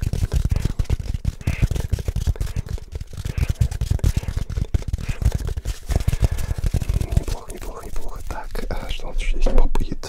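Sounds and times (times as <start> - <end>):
microphone thumps and rubbing: 0.0 - 9.9
person whispering: 4.1 - 10.0.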